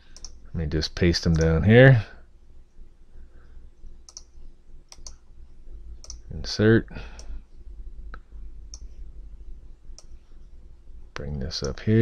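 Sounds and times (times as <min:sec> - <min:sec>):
faint low hum: 0:00.0 - 0:12.0
mouse buttons clicking: 0:04.1 - 0:04.3, 0:04.9 - 0:05.2.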